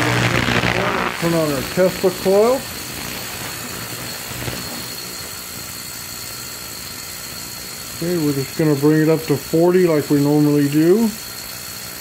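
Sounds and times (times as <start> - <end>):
ultrasonic cleaner buzzing: 0.0 - 12.0.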